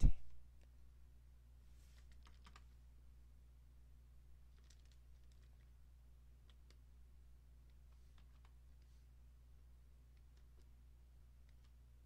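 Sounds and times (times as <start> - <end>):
low electrical hum: 0.0 - 12.0
computer keyboard clicks: 2.0 - 2.7, 4.5 - 5.7, 8.1 - 8.6, 10.1 - 10.7, 11.4 - 11.8.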